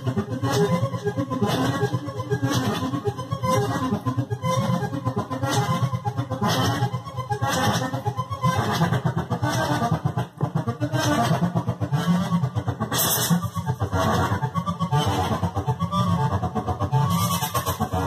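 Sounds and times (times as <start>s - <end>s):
synthesizer playing dense notes: 0.0s - 18.0s.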